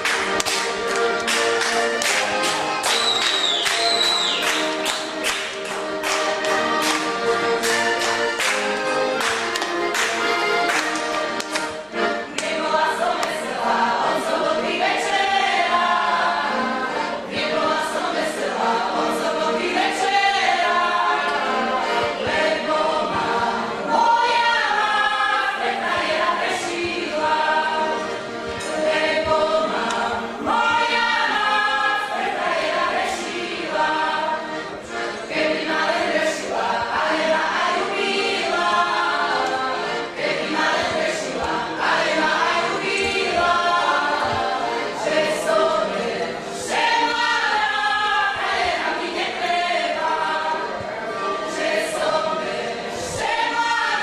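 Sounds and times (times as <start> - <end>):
group singing in harmony: 0.0 - 54.0.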